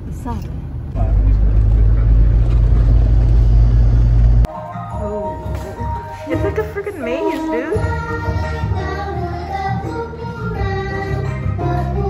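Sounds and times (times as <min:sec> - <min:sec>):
car rumble inside cabin: 0:00.9 - 0:04.5
music: 0:04.5 - 0:12.0.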